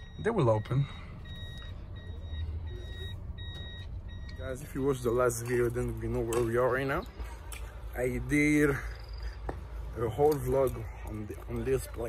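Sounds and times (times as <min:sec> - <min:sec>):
low engine rumble: 0:00.0 - 0:12.0
vehicle warning beeps: 0:00.0 - 0:12.0.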